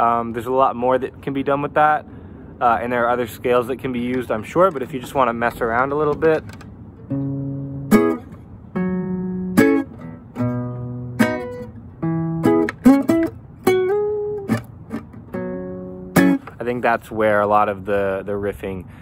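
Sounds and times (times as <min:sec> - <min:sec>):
acoustic guitar plucked notes: 0:06.0 - 0:16.7.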